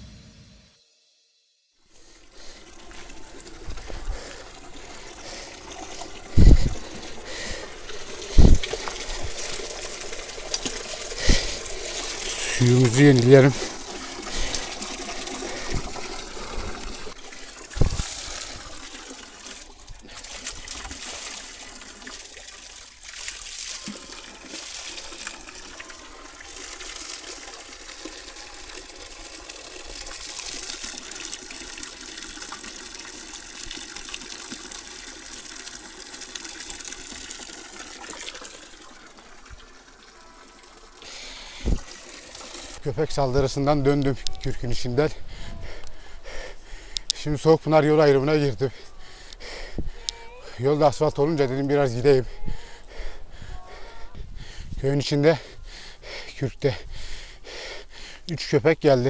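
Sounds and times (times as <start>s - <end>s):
fountain water splashing into basin: 2.0s - 42.8s.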